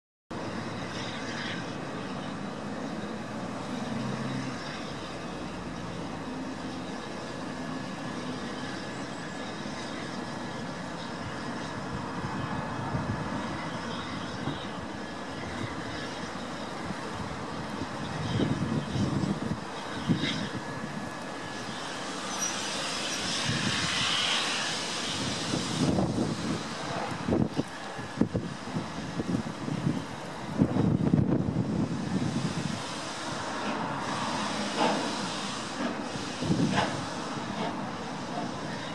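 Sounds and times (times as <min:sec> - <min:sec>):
steam train rumble and hiss: 0:00.3 - 0:38.9
train knocks: 0:33.5 - 0:38.9.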